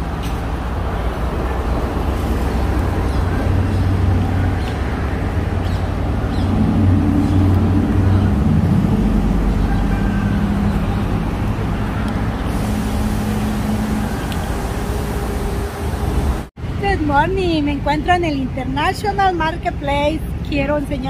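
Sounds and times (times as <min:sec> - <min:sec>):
vehicle engine running nearby: 0:00.0 - 0:16.5
road traffic: 0:00.0 - 0:21.0.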